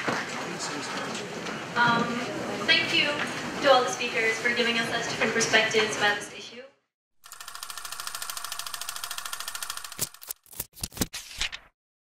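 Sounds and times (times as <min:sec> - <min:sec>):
rapid clicking rattle: 0:07.2 - 0:10.2.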